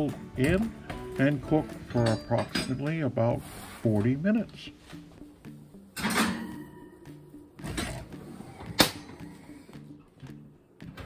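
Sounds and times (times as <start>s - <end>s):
faint music: 0.0s - 11.0s
dish clattering on oven rack: 6.0s - 6.7s.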